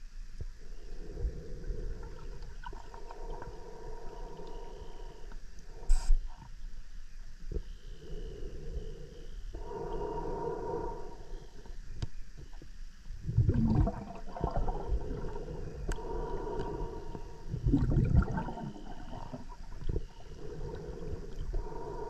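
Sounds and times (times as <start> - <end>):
underwater bubbling: 1.0 - 6.0, 13.2 - 22.0.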